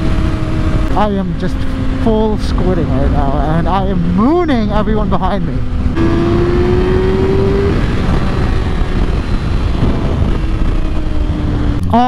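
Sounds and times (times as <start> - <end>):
motorcycle engine: 0.0 - 12.0
wind and road noise: 0.0 - 12.0.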